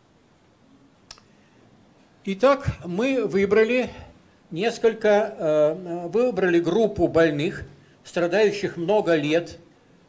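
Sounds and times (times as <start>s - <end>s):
short sharp click: 1.1s - 1.3s.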